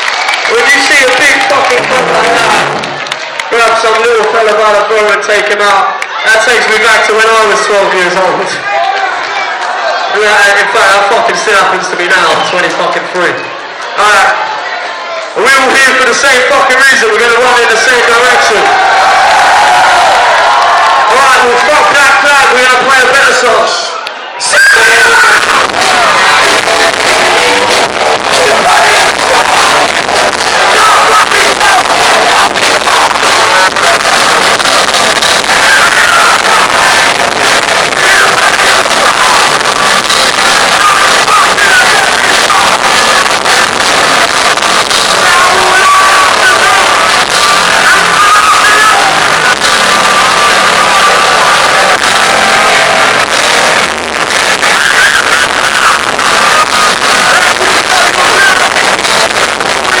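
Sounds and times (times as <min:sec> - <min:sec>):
crowd noise: 0:00.0 - 1:00.0
shouted vocals: 0:14.0 - 1:00.0
live punk band playing: 0:24.8 - 1:00.0.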